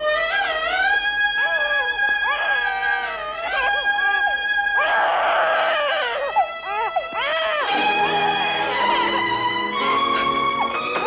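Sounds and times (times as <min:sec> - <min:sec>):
wailing violin phrases: 0:05.9 - 0:11.0.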